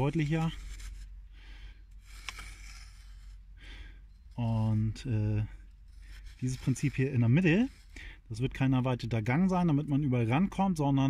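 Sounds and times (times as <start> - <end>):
stick scraping dry soil: 0.0 - 10.7.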